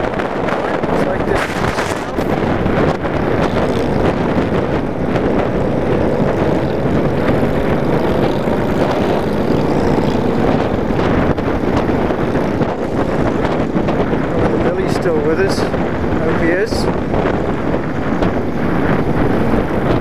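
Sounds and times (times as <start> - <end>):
wind rumble on microphone: 0.0 - 20.0
motorcycle engine running: 0.1 - 20.0.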